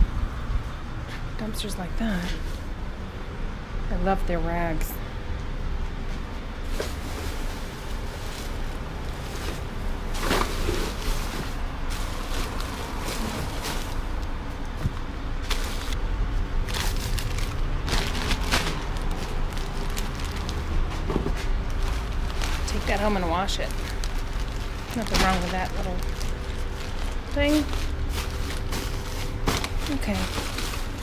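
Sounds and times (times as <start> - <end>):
plastic bags rustling: 6.6 - 31.0.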